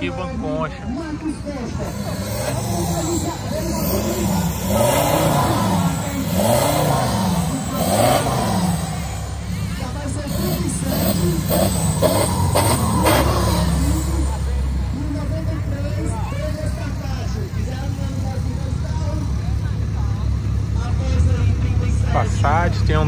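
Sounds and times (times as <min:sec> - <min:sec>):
diesel engine rumbling: 0:00.0 - 0:23.0.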